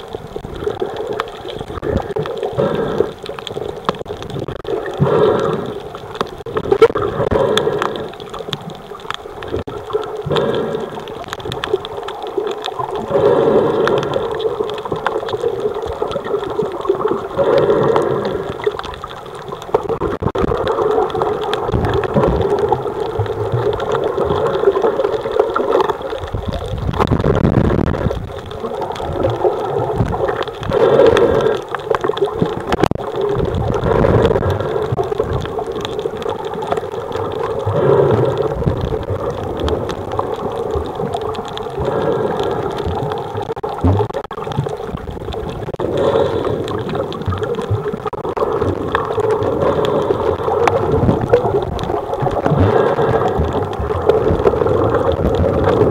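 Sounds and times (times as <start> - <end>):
underwater water gurgling: 0.0 - 55.9.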